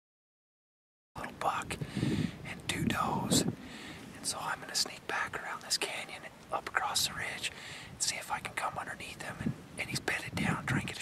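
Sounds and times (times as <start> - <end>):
man whispering: 1.2 - 1.8, 2.4 - 3.5, 4.1 - 11.0.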